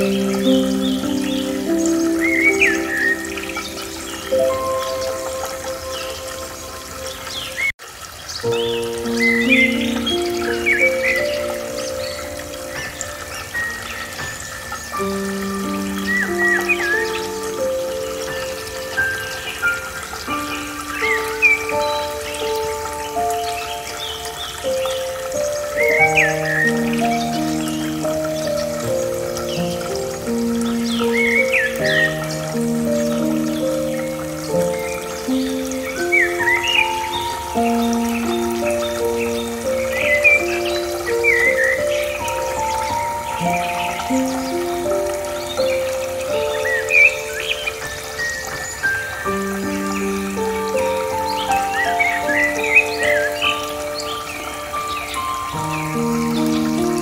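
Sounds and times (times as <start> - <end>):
slow calm instrumental music: 0.0 - 57.0
trickling water: 0.0 - 57.0.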